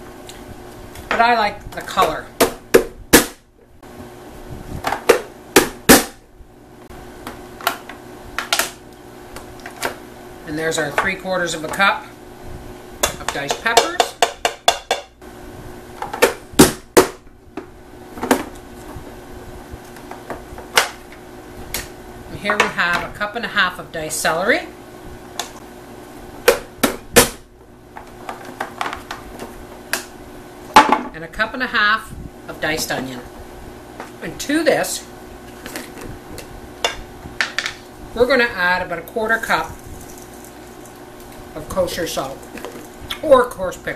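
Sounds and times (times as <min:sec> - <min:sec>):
vegetable chopper knocking: 0:05.1 - 0:06.2, 0:16.2 - 0:17.2, 0:26.4 - 0:27.4.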